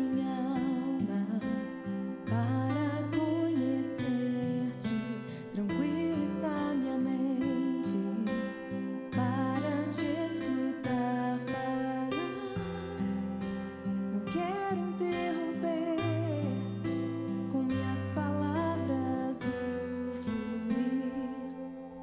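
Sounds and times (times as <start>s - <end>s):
woman singing gospel: 0.0s - 1.7s, 2.3s - 8.5s, 9.1s - 13.4s, 14.1s - 16.7s, 17.5s - 22.0s.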